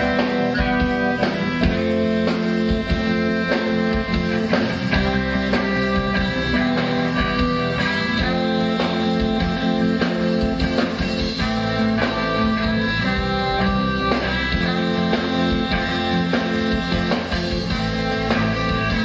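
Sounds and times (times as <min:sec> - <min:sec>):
drum kit beat: 0:00.0 - 0:19.0
electric guitars: 0:00.0 - 0:19.0
rock band playing: 0:00.0 - 0:19.0.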